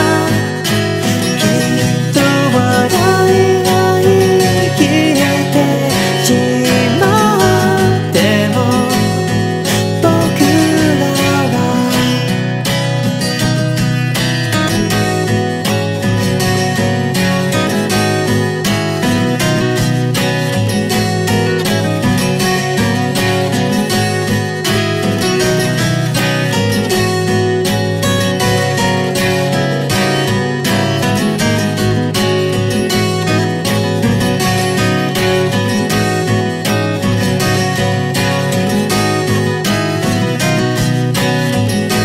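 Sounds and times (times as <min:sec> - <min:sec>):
acoustic guitar strumming: 0:00.0 - 0:42.0.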